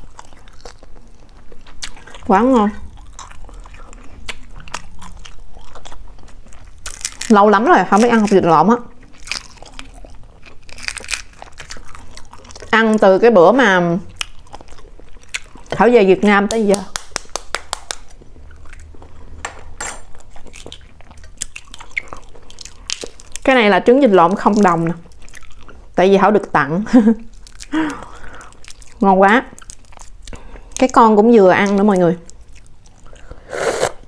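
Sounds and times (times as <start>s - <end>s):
person chewing with mouth smacks: 0.0s - 7.4s, 8.9s - 12.8s, 14.0s - 15.9s, 16.5s - 19.4s, 20.1s - 23.5s, 24.4s - 26.0s, 27.2s - 30.9s, 31.6s - 34.0s.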